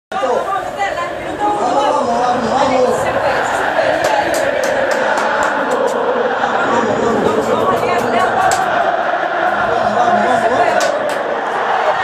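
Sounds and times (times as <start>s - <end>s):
people chattering: 0.1s - 12.0s.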